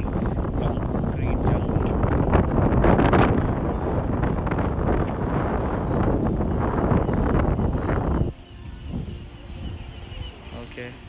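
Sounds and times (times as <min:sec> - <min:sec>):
faint background music: 0:00.0 - 0:11.0
wind buffeting microphone: 0:00.0 - 0:11.0.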